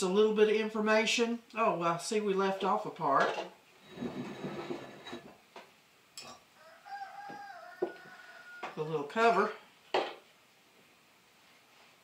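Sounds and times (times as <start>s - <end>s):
chicken calling: 6.6s - 8.9s.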